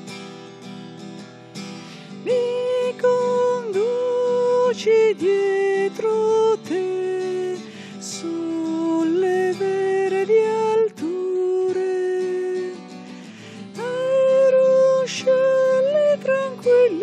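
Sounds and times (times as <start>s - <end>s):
person singing a hymn: 2.2s - 12.9s, 13.8s - 17.0s.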